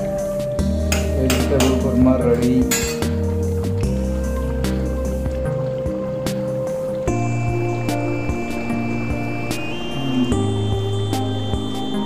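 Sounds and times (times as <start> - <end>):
sustained chords: 3.5 - 12.0.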